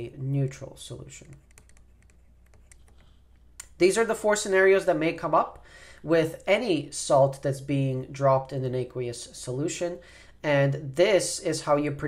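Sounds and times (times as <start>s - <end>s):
man talking: 0.0s - 1.4s, 3.7s - 12.0s.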